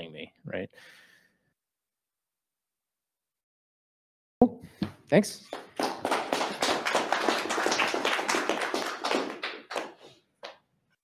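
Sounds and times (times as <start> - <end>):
audience applauding: 5.5 - 10.2.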